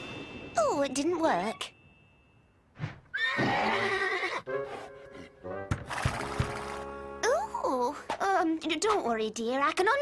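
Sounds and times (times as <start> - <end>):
horse whinnying: 3.1 - 4.5.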